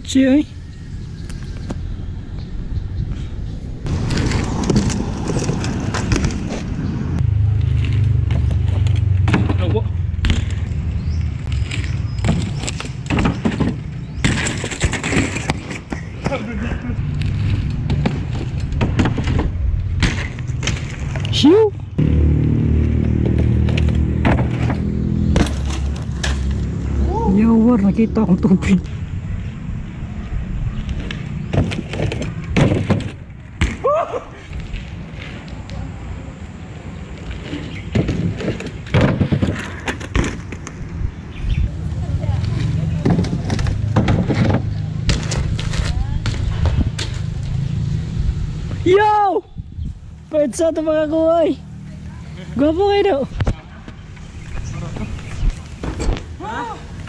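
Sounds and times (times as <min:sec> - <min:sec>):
bikes rolling on concrete: 0:00.0 - 0:57.0
bikes clattering on landing: 0:11.6 - 0:16.7, 0:17.3 - 0:21.2, 0:31.1 - 0:35.4, 0:37.2 - 0:40.9
voices: 0:26.9 - 0:29.0, 0:35.2 - 0:38.3, 0:41.4 - 0:46.9, 0:48.7 - 0:57.0.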